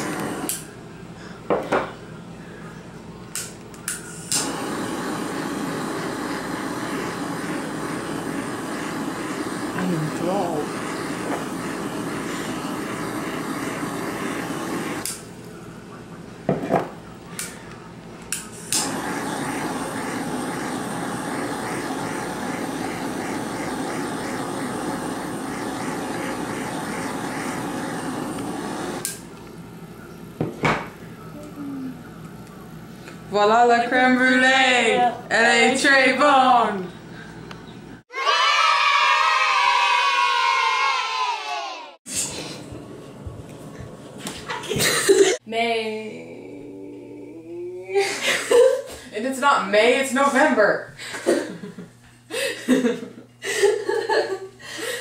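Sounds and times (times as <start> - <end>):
kitchen torch flame hissing: 0.0 - 1.9, 3.3 - 15.7, 17.2 - 38.1, 42.0 - 45.4, 48.0 - 55.0.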